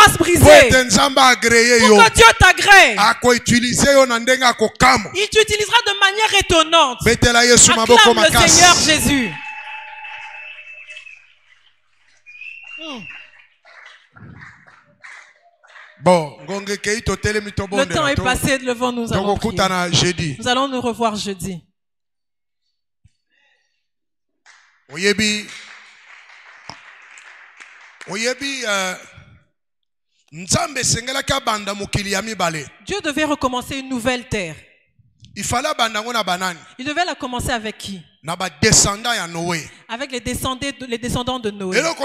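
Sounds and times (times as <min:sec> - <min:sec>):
man's drawn-out voiced sound: 0:07.6 - 0:09.4, 0:41.7 - 0:42.0
congregation shouting and cheering: 0:07.6 - 0:11.2.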